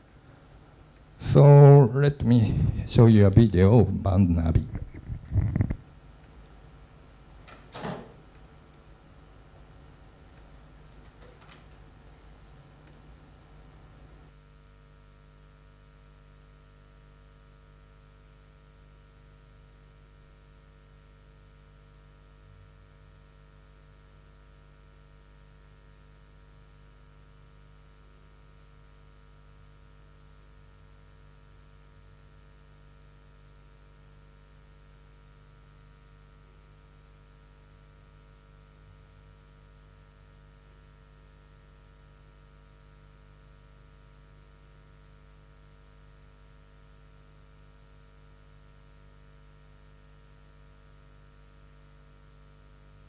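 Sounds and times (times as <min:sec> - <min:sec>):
faint mains hum with hiss: 0:00.0 - 0:53.0.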